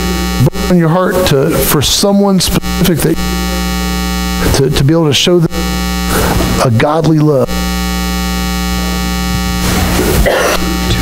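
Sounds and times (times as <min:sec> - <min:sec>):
loud electrical mains hum: 0:00.0 - 0:11.0.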